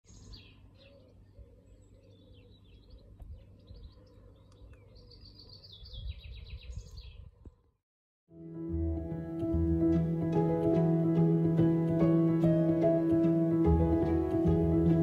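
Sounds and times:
small birds chirping and singing: 0.0s - 7.6s.

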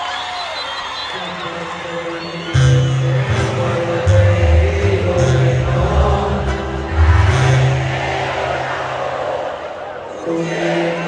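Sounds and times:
large crowd noise: 0.0s - 11.0s
live band music over pa: 2.5s - 8.9s.

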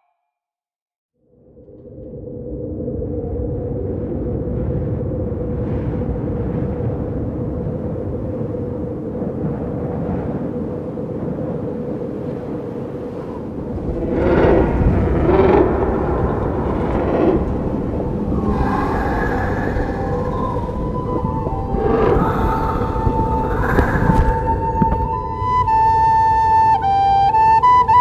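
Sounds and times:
low rumbling ambient drone: 1.2s - 11.6s, 12.2s - 27.8s
higher drawn-out tones: 13.7s - 28.0s.

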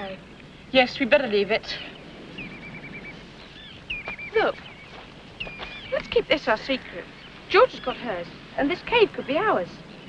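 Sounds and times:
faint outdoor background hiss: 0.0s - 10.0s.

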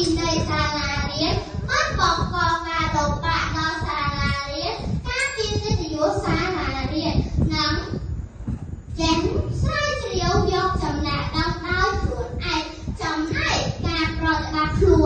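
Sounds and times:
girl speaking into a microphone: 0.0s - 8.2s, 8.9s - 15.0s.

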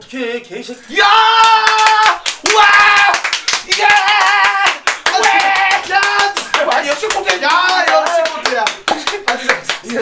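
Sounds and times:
man shouting high cries: 0.9s - 6.4s
hands clapping quickly: 1.4s - 10.0s.

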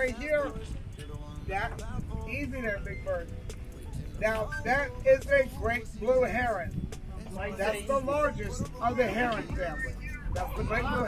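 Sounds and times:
man talking: 0.0s - 0.8s, 1.4s - 11.0s
background music: 0.0s - 11.0s
steady low rumble: 0.0s - 11.0s.

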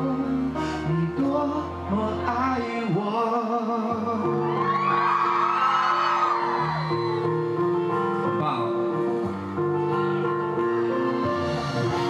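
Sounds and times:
man singing with vibrato: 0.0s - 4.8s
backing track music: 0.0s - 12.0s
crowd screaming: 4.2s - 7.7s.

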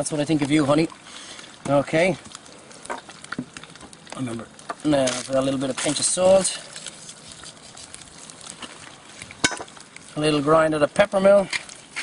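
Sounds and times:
fat spitting and crackling: 0.2s - 10.5s.

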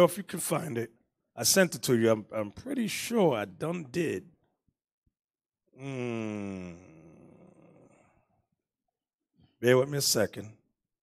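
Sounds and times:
man murmuring: 5.8s - 8.0s.

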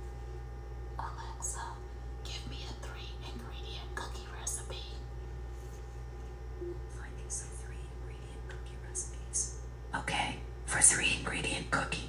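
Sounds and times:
steady low hum: 0.0s - 12.0s
woman whispering: 1.0s - 5.1s, 6.9s - 12.0s.

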